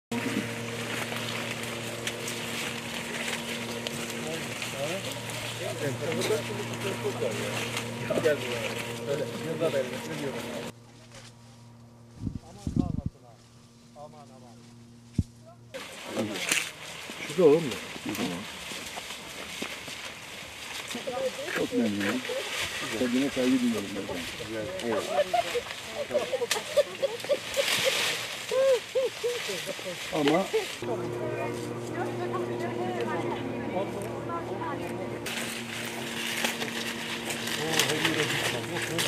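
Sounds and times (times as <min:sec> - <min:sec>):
branches and leaves rustling: 0:00.1 - 0:39.0
steady low hum: 0:00.1 - 0:39.0
women talking: 0:20.9 - 0:22.6, 0:24.8 - 0:27.5, 0:30.6 - 0:35.3
twigs snapping: 0:35.3 - 0:39.0.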